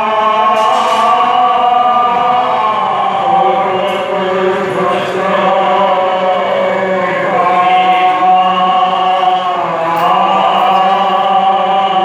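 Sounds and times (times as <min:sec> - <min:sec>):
group chanting: 0:00.0 - 0:12.0
steady drone: 0:00.0 - 0:12.0.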